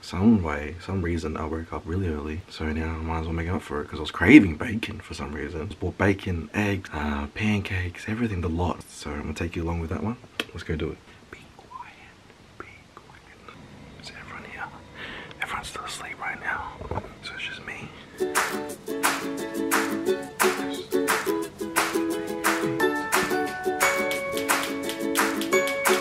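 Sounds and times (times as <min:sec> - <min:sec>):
faint whispered speech: 0:15.4 - 0:17.9
plucked-string tune over a beat: 0:18.2 - 0:26.0.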